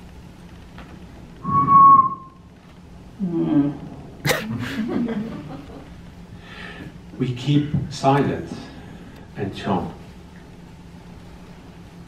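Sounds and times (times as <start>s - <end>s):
person whistling high note: 1.4s - 2.4s
person humming low: 3.2s - 3.9s.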